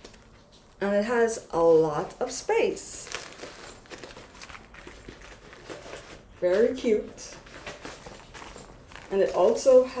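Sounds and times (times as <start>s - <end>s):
packing stuffing rustling: 2.7s - 10.0s.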